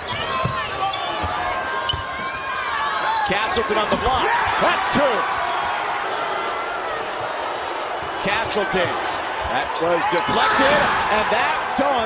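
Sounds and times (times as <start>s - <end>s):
sneakers squeaking on court: 0.0s - 3.6s.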